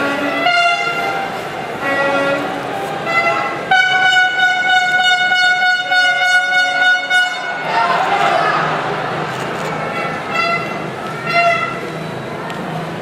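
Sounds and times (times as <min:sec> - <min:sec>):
horns blowing: 0:00.0 - 0:08.8, 0:09.6 - 0:12.2
crowd noise: 0:00.0 - 0:13.0.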